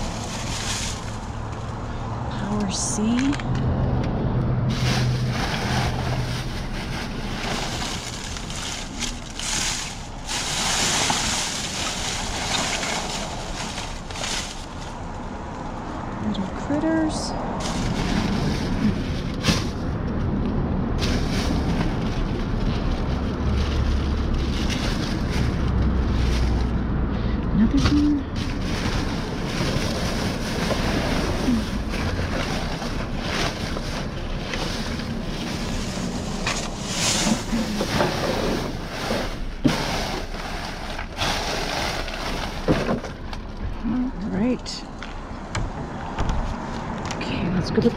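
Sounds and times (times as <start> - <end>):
plastic bags rustling: 0.0 - 1.9, 4.7 - 15.4, 17.6 - 20.0, 21.0 - 26.8, 27.7 - 43.6.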